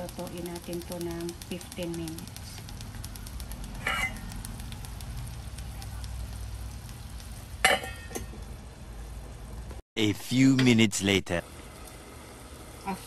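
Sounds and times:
pan simmering with low bubbling: 0:00.0 - 0:09.8, 0:11.3 - 0:13.0
glass lid clinking on pan: 0:07.6 - 0:08.3.

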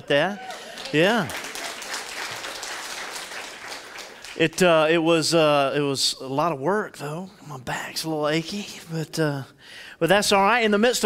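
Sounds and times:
congregation clapping: 0:00.1 - 0:04.9.

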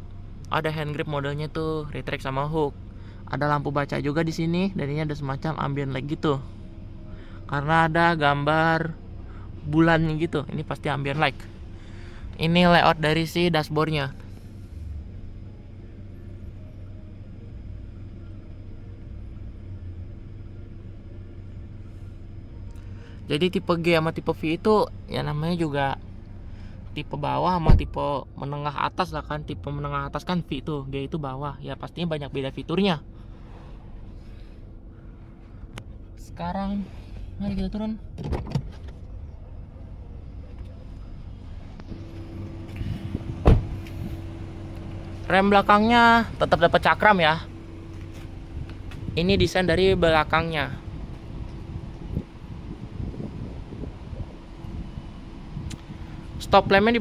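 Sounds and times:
car engine idling: 0:00.0 - 0:57.0
steady low hum: 0:00.0 - 0:57.0
car door shutting thud: 0:27.6 - 0:27.9, 0:38.1 - 0:38.9, 0:42.7 - 0:44.0
car door latch clicks: 0:38.1 - 0:38.9, 0:43.4 - 0:43.9.

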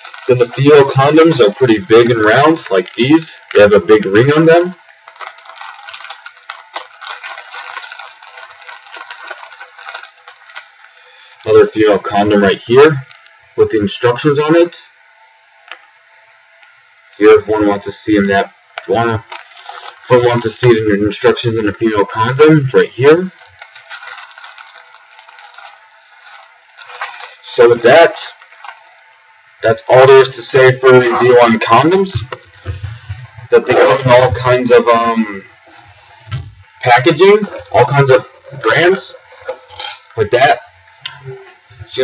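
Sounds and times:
wrappers crinkling: 0:00.0 - 0:11.8, 0:18.9 - 0:20.9, 0:23.2 - 0:40.7.

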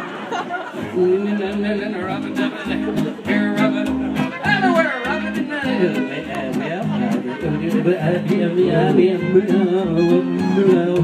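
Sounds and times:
strummed guitar: 0:00.7 - 0:11.0
upright bass plucked: 0:00.8 - 0:11.0.

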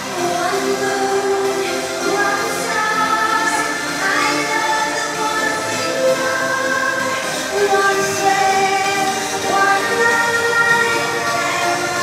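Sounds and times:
live dance music: 0:00.0 - 0:12.0.

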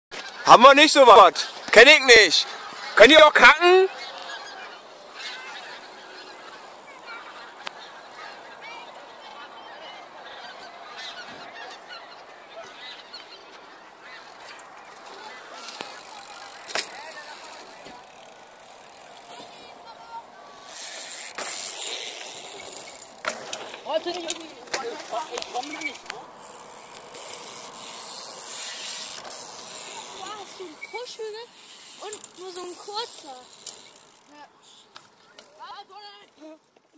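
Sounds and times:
flock of birds calling: 0:00.2 - 0:33.4.

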